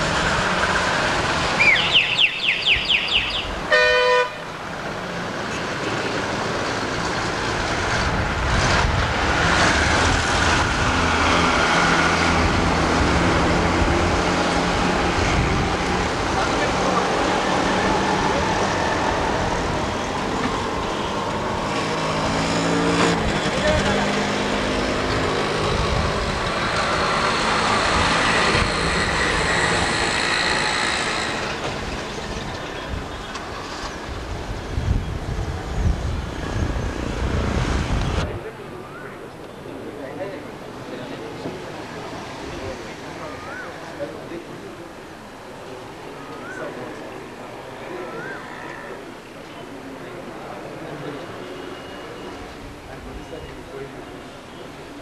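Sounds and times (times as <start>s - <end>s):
traffic: 0.0s - 55.0s
vehicle horn toot: 2.7s - 4.4s.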